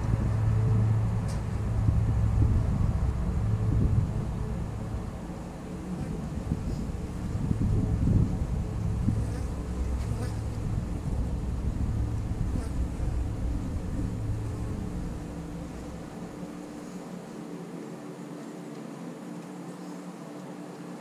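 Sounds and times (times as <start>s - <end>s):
low rumble: 0.0s - 17.0s
honey bees buzzing: 0.0s - 21.0s.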